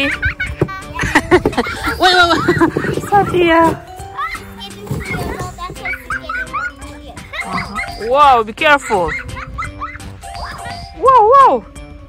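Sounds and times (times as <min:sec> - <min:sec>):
background music with held notes: 0:00.0 - 0:12.0
child's high-pitched squeaks: 0:04.2 - 0:08.2, 0:08.8 - 0:11.2.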